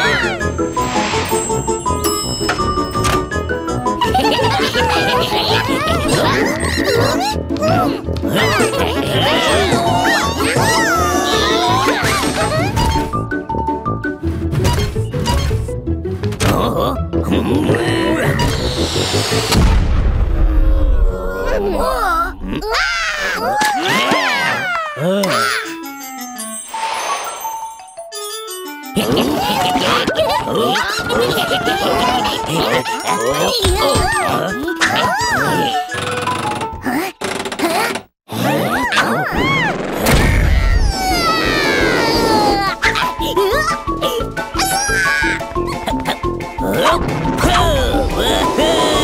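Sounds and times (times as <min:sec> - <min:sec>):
cartoon background music: 0:00.0 - 0:49.0
squeaky wordless vocalizations: 0:04.1 - 0:13.1, 0:16.4 - 0:18.7, 0:29.6 - 0:49.0.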